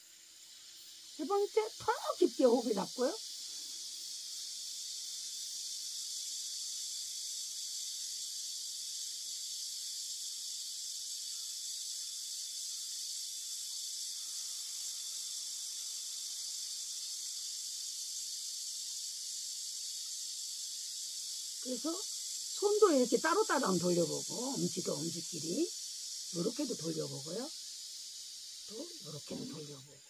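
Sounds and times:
insect chorus drone: 0.0s - 30.0s.

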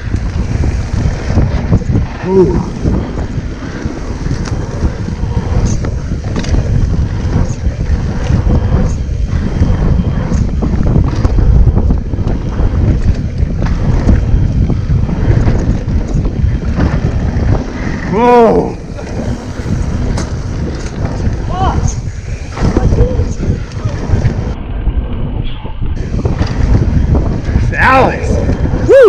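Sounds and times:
bike knocks and rattles: 0.0s - 18.0s, 18.9s - 24.6s
bicycle tyre rumble on dirt: 0.0s - 29.0s
wind rushing over microphone: 0.0s - 29.0s.

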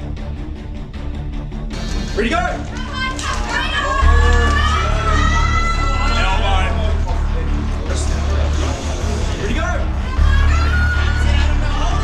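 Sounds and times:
people shouting excitedly: 2.2s - 7.2s, 9.4s - 12.0s.

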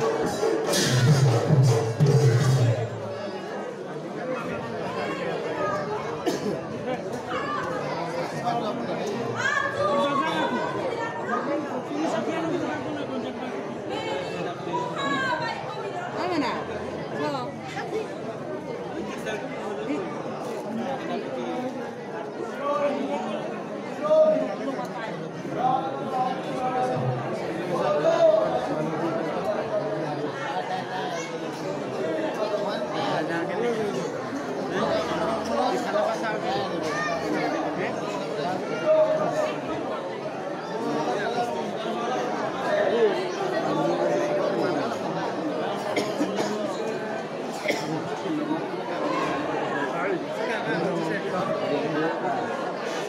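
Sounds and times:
voices chattering: 0.0s - 53.0s.

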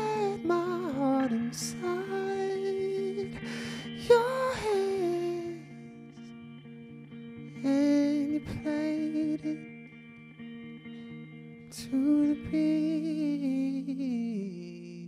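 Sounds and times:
man singing wordless melody: 0.0s - 6.1s, 7.6s - 9.7s, 11.7s - 15.0s
plucked guitar: 0.0s - 15.0s
soft sustained instrumental notes: 0.0s - 15.0s.

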